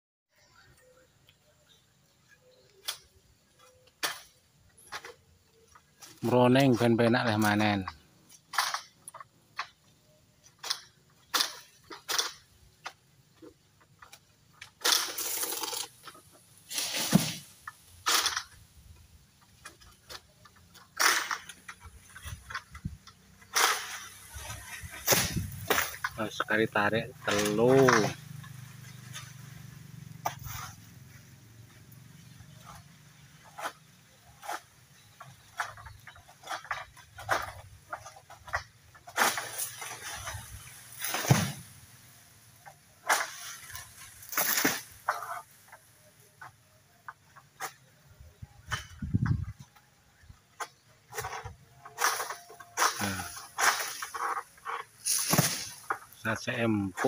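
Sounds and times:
sickle cracking and scraping fronds: 0.5s - 57.0s
palm fronds rustling: 1.7s - 57.0s.

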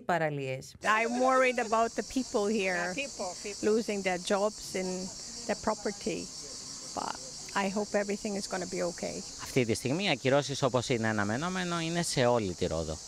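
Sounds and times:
woman speaking: 0.0s - 6.3s, 6.9s - 9.2s
cicadas chorus: 0.8s - 13.0s.

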